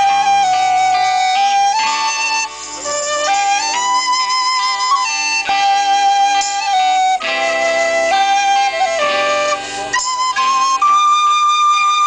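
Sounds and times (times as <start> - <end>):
high held melody notes: 0.0 - 12.0
live band through speakers: 0.0 - 12.0.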